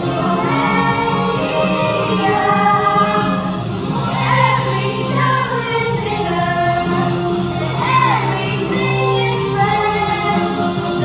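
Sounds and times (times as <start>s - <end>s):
children's choir singing: 0.0s - 11.0s
musical accompaniment: 0.0s - 11.0s.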